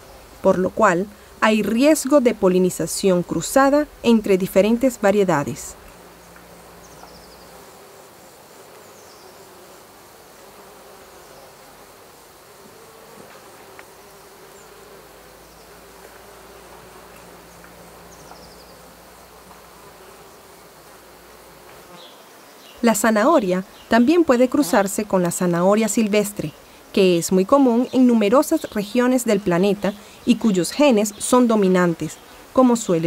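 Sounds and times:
insects buzzing: 0.0 - 33.0.

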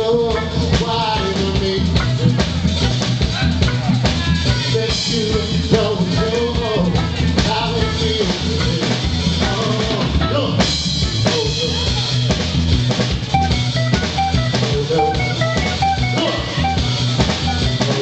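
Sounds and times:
live band playing neo-soul: 0.0 - 18.0
short repeated high notes: 13.3 - 18.0.

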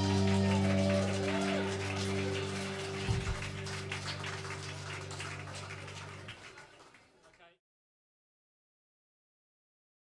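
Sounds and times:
audience clapping: 0.0 - 7.6
low thump: 3.1 - 3.4.

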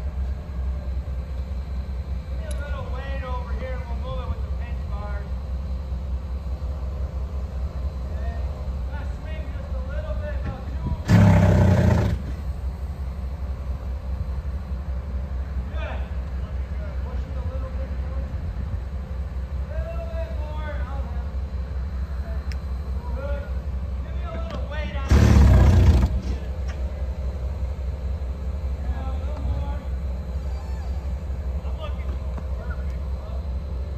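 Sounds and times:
diesel engine rumbling under load: 0.0 - 22.3, 22.9 - 33.9.

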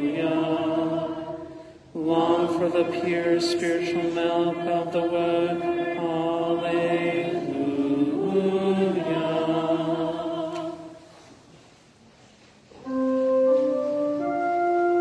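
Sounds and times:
congregation singing chant: 0.0 - 11.2
organ accompaniment: 12.8 - 15.0.

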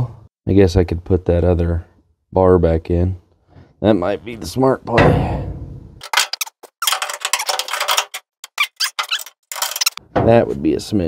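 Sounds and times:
light metal clinks and rattles: 6.0 - 10.0.

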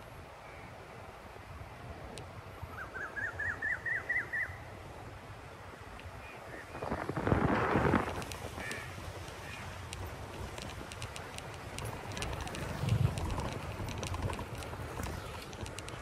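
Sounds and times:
wind and road rumble: 0.0 - 16.0.

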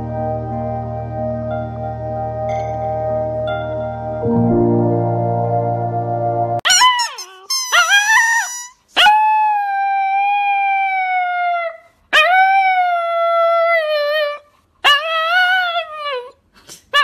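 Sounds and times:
dog howling and yipping: 6.7 - 16.3.

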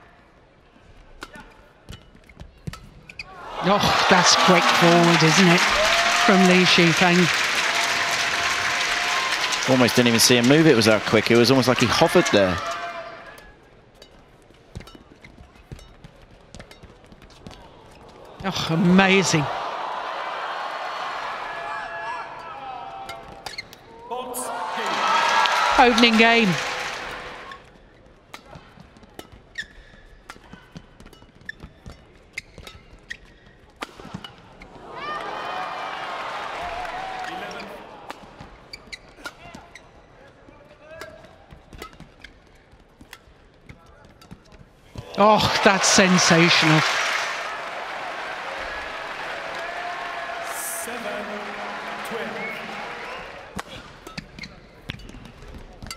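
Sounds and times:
shoes squeaking on court: 1.9 - 3.3, 14.0 - 18.5, 23.2 - 23.9, 28.8 - 33.8, 38.4 - 40.5, 41.4 - 45.0, 53.6 - 55.9
crowd cheering: 3.3 - 13.4, 18.0 - 23.4, 24.0 - 27.6, 34.7 - 38.4, 45.0 - 54.0
shoe squeaks on court: 23.4 - 23.8, 29.3 - 30.4, 31.1 - 33.7, 38.7 - 40.0, 54.0 - 55.2.

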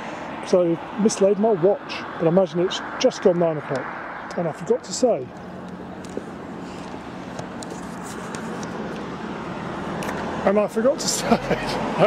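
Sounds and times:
road traffic rush: 0.0 - 12.0.

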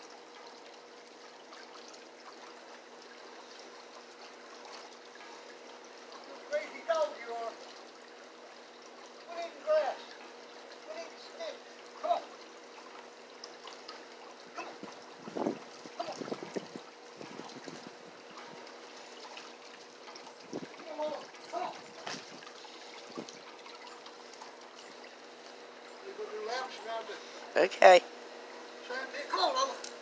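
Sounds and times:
low steady hum: 0.0 - 30.0
water trickling: 0.0 - 30.0.

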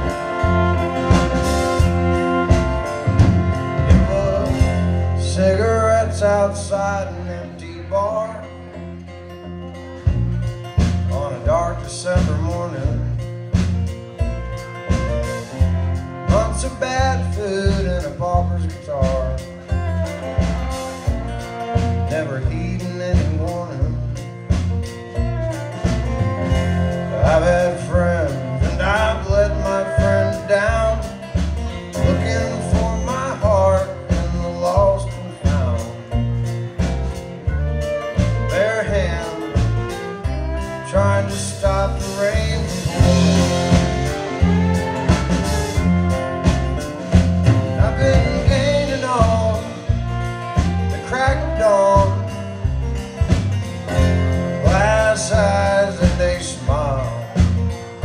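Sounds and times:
steady drum beat: 0.0 - 5.8, 10.1 - 58.0
fiddle sliding between notes: 0.0 - 5.9, 19.4 - 23.2, 37.0 - 52.9
bass: 0.0 - 58.0
fiddle: 0.0 - 58.0
strummed acoustic guitar: 0.0 - 58.0.

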